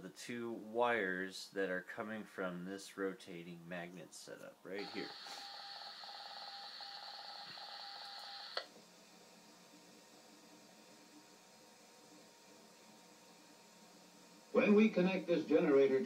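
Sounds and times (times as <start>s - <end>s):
film soundtrack hiss: 0.0s - 16.0s.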